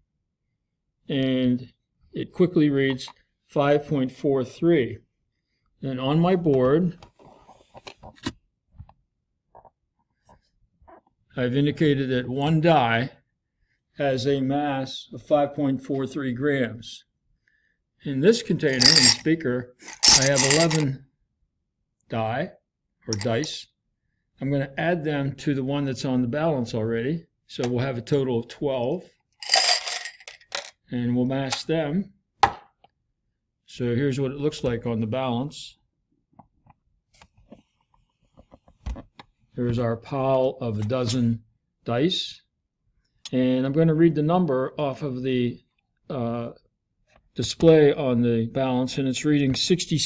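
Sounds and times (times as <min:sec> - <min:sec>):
dice clattering on scale pan: 0:18.8 - 0:19.2, 0:19.9 - 0:20.8, 0:29.4 - 0:30.7.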